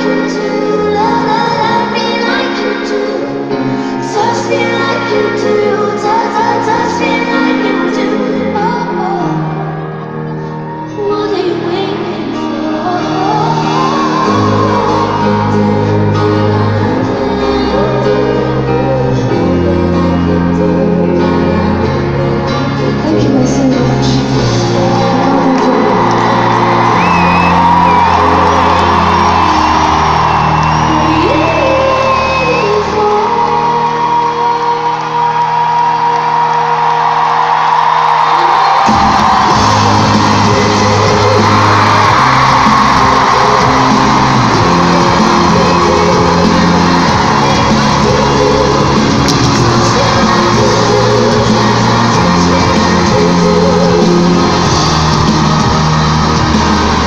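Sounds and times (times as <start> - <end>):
crowd shouting and whooping: 0.0 - 23.0, 24.2 - 57.0
live pop band with singer: 0.0 - 57.0.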